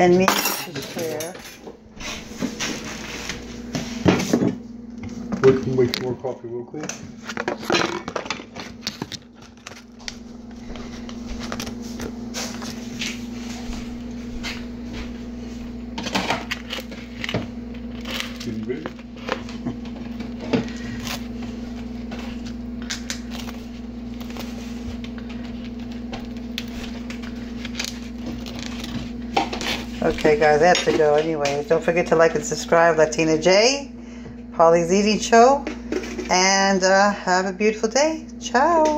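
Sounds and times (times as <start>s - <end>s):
steady low hum: 0.0s - 38.9s.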